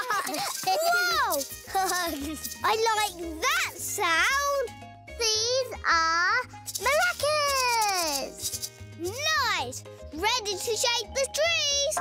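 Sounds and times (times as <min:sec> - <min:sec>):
maracas rattling: 0:00.0 - 0:04.1, 0:06.4 - 0:09.6
light music: 0:00.0 - 0:12.0.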